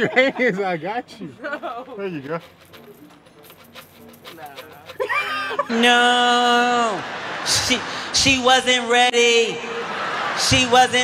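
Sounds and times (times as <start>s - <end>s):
coins clinking: 1.4s - 5.7s
person laughing: 4.9s - 8.0s.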